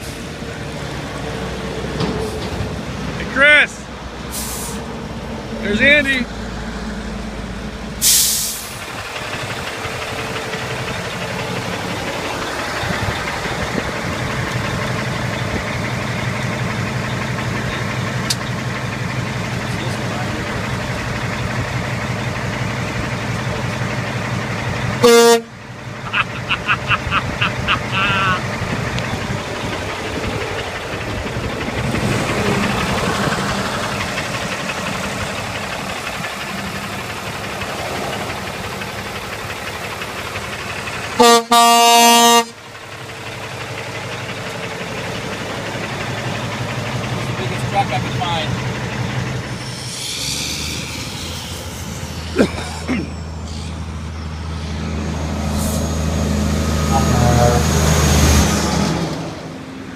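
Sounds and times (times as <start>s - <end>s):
diesel engine idling: 0.0s - 59.9s
truck horn blasts: 25.0s - 28.4s, 41.2s - 42.6s, 56.9s - 57.9s.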